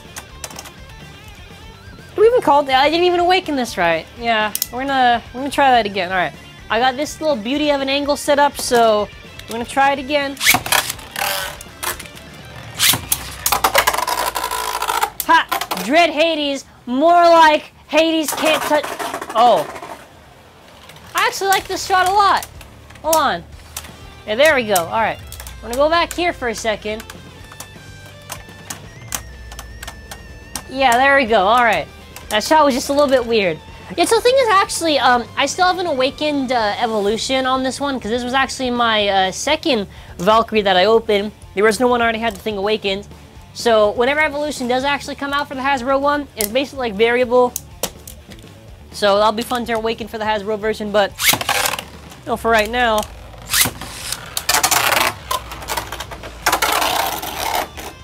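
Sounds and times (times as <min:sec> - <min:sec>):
faint background music: 0:00.0 - 0:58.0
spinning tops clashing in plastic arena: 0:10.4 - 0:16.0, 0:51.2 - 0:58.0
spinning tops clattering: 0:12.8 - 0:16.0.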